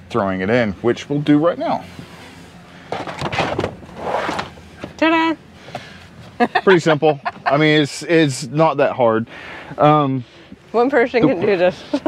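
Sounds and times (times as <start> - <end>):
rubber liner scraping and sliding: 3.0 - 4.6.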